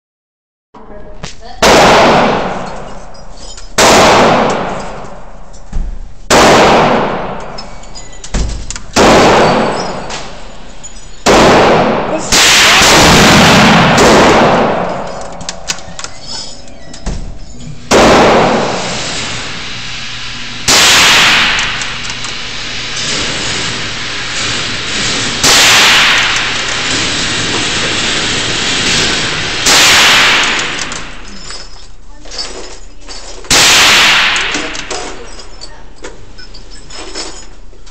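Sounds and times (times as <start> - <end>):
rifle shots echoing: 1.6 - 3.0, 3.8 - 5.3, 6.3 - 7.6, 8.9 - 10.4, 11.2 - 15.7, 17.9 - 19.6, 20.6 - 22.1, 25.0 - 31.2, 33.5 - 35.2.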